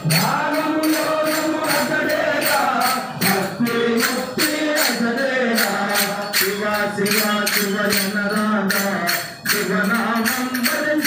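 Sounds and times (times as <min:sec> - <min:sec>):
devotional chant singing: 0:00.0 - 0:11.0
jingling hand percussion: 0:00.0 - 0:11.0.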